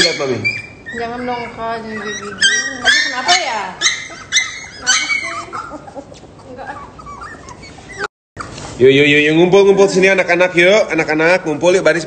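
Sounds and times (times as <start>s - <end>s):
puppy whimpering: 0.0s - 8.8s.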